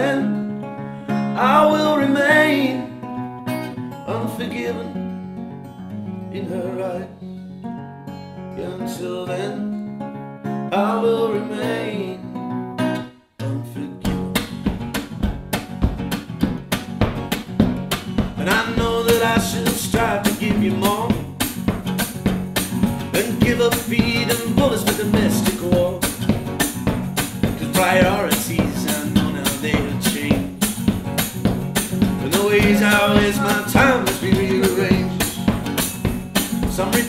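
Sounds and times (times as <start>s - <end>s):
acoustic guitar strumming: 0.0s - 37.0s
hand percussion beat: 14.1s - 37.0s.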